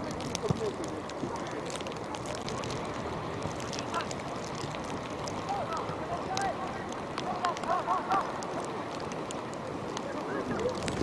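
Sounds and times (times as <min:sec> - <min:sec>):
wind noise on microphone: 0:09.8 - 0:11.0.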